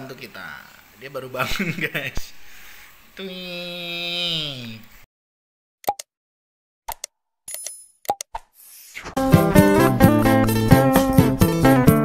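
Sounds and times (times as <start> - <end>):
plucked guitar background music: 9.2 - 12.0.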